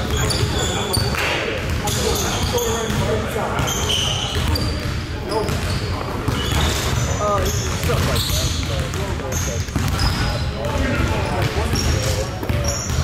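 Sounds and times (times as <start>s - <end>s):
basketballs bouncing on wooden floor: 0.0s - 13.0s
sneakers squeaking on court: 0.0s - 13.0s.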